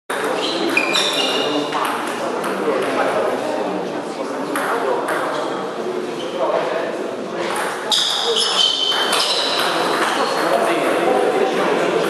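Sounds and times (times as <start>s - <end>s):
people's voices in a hall: 0.1s - 12.0s.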